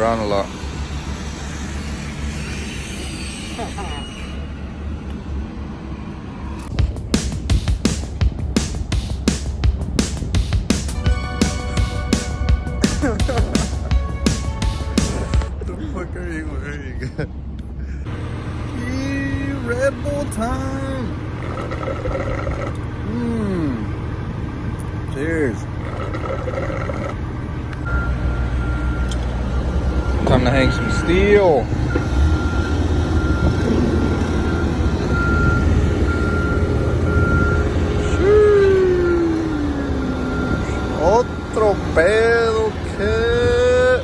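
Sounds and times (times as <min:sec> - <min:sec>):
heavy machinery engine rumbling: 0:00.0 - 0:44.0
steady low rumble: 0:05.1 - 0:18.5.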